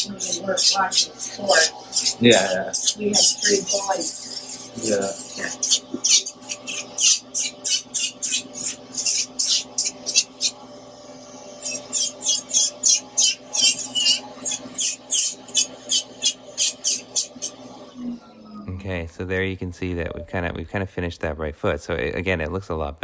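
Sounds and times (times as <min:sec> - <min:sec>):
rotary file rasping on skin: 0:00.0 - 0:10.6, 0:11.6 - 0:17.6.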